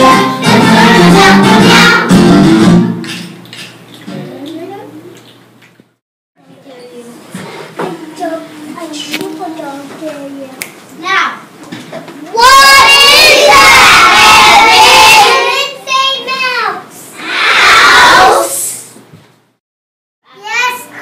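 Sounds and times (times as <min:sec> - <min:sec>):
loud high-pitched child voices: 0:12.3 - 0:18.7, 0:20.3 - 0:21.0.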